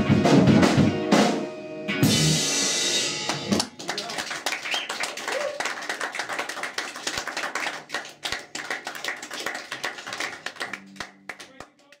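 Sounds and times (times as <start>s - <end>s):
audience applauding: 3.3s - 12.0s.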